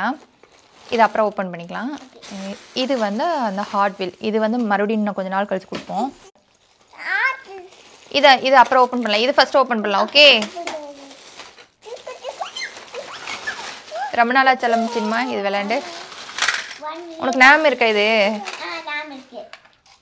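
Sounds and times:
plastic bag rustling: 0.0s - 20.0s
young child talking: 2.0s - 2.4s, 6.9s - 7.7s, 10.4s - 11.2s, 11.8s - 13.1s, 16.8s - 17.4s, 18.4s - 19.5s
plastic toy track pieces clattering: 10.2s - 20.0s.

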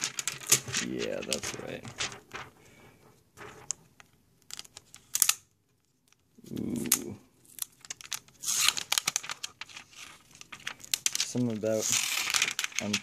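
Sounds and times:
plastic film peeling and crinkling: 0.0s - 2.6s, 3.4s - 13.0s.

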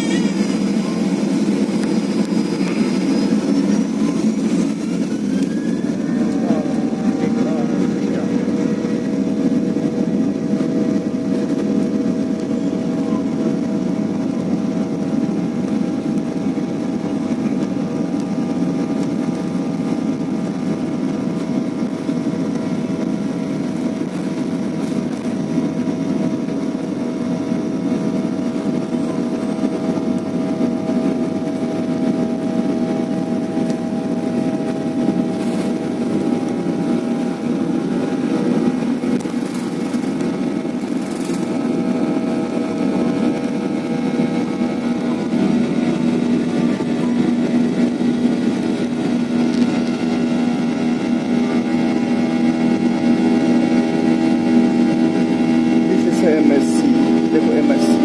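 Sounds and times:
airliner engines roaring in cabin: 0.0s - 58.0s.

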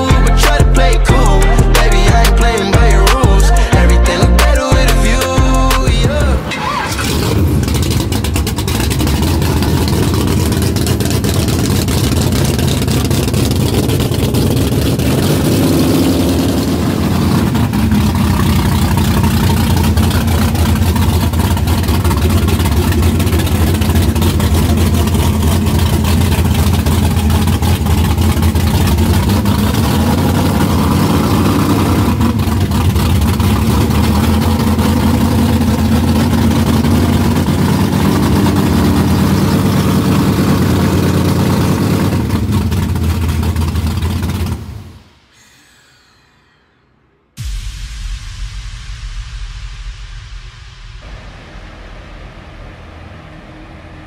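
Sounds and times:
car engine running: 0.0s - 46.7s, 51.0s - 54.0s.

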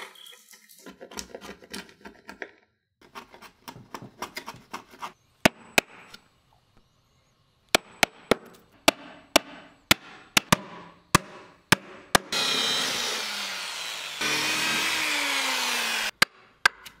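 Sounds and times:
power drill boring into wood: 12.3s - 16.1s.

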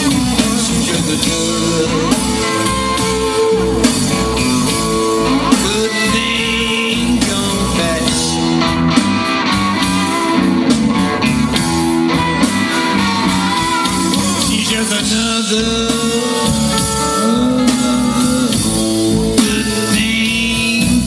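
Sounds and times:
bass guitar: 0.0s - 21.0s
electric guitar: 0.0s - 21.0s.

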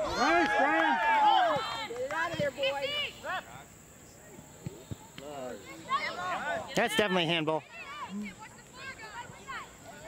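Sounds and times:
people shouting: 0.0s - 1.9s.

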